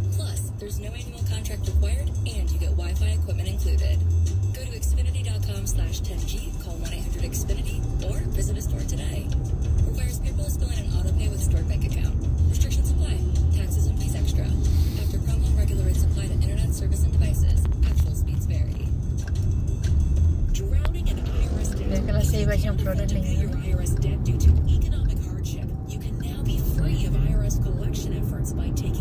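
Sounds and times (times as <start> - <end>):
car radio talk and music: 0.0 - 29.0
road and engine rumble in car: 0.0 - 29.0.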